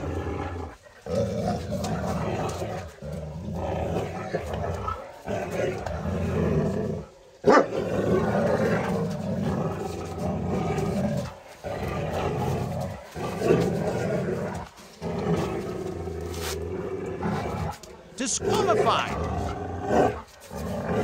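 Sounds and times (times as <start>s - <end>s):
large animal growling deeply: 0.0s - 17.8s.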